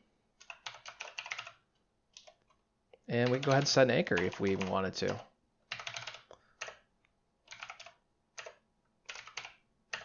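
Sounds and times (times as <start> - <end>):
typing on computer keyboard: 0.4 - 2.6, 3.2 - 10.0.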